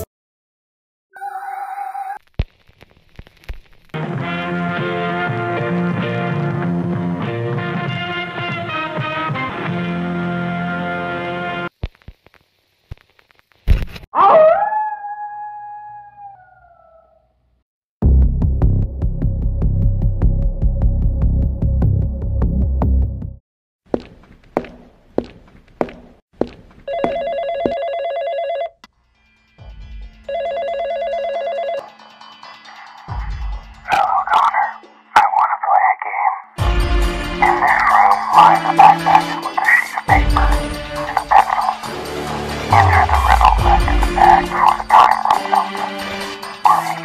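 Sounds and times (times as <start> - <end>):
distorted voice on phone: 33.9 - 36.5, 37.4 - 41.9, 42.7 - 47.0
electronic music: 36.6 - 47.0.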